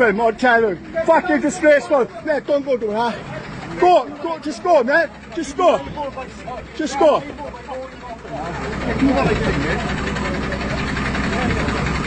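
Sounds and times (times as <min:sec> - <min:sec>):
crowd voices: 0:00.0 - 0:12.0
lorry diesel engine running: 0:00.0 - 0:12.0.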